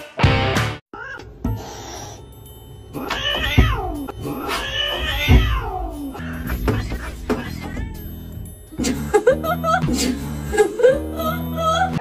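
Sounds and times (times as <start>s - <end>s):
background music: 0.0s - 12.0s
cat meowing: 3.0s - 6.0s.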